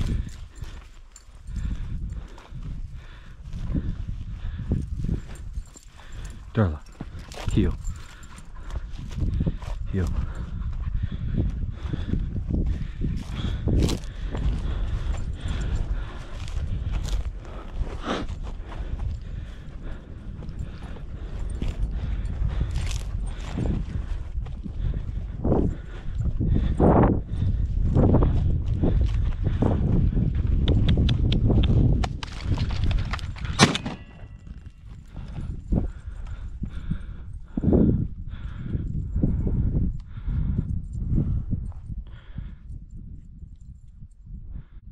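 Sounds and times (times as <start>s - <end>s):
wind rumble on microphone: 0.0s - 44.9s.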